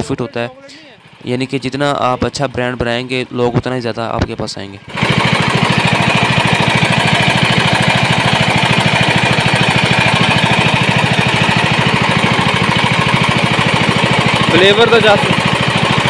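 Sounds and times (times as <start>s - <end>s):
portable generator engine running: 0.0s - 16.0s.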